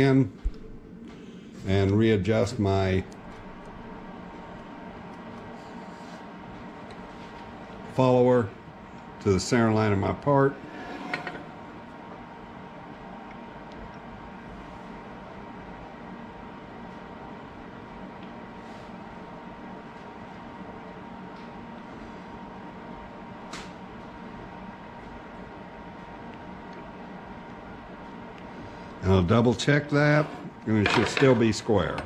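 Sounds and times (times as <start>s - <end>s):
machine hum: 0.0s - 32.0s.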